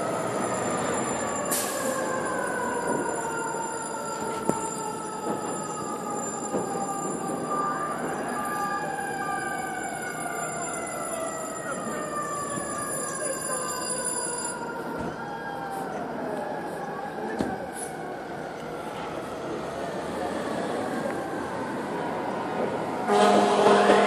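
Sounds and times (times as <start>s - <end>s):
fire truck siren wailing: 0.0s - 24.0s.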